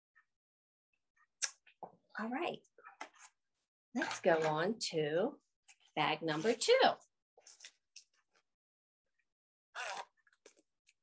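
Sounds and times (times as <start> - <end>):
plastic zipper bag ripping open: 9.8 - 10.1.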